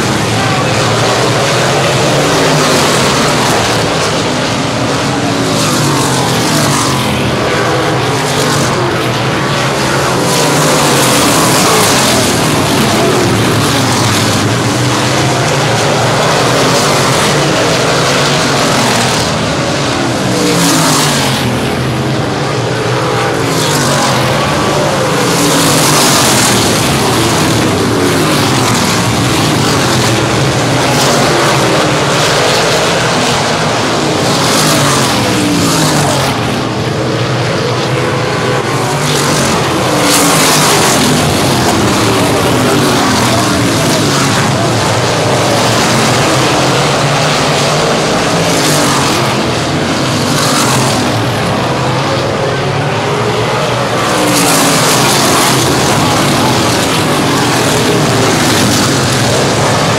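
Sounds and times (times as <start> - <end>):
racing car engines at high revs: 0.0 - 59.9.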